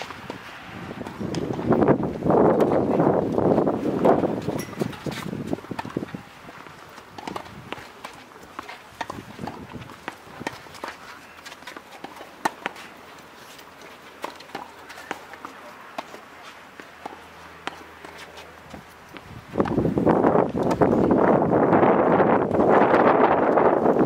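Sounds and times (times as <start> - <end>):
footsteps on clay: 0.0 - 21.1
rackets hitting tennis ball: 0.0 - 21.2.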